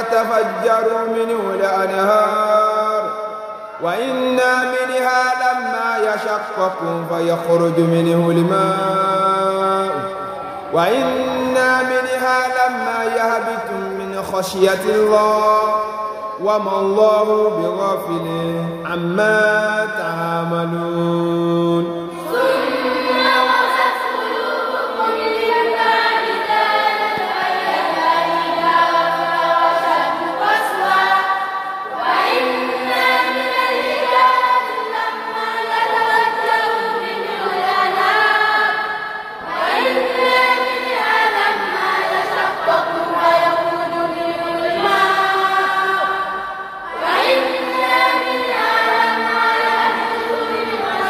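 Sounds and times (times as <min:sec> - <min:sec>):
group of voices chanting: 0:22.1 - 0:51.0.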